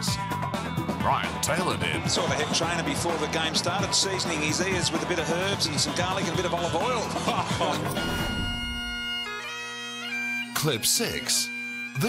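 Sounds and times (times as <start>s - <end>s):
bagpipe music: 7.9s - 12.0s.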